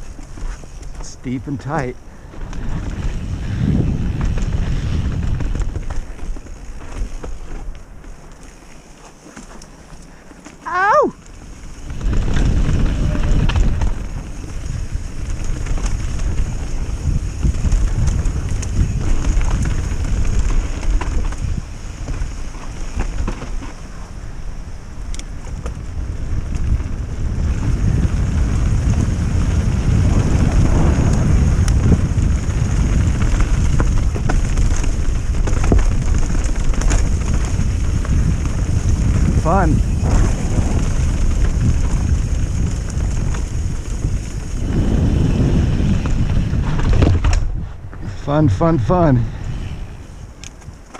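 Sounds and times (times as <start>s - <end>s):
wind buffeting microphone: 0.0s - 8.0s, 10.7s - 50.9s
bike tyres rumbling on dirt: 0.0s - 50.9s
person shouting: 10.6s - 11.2s.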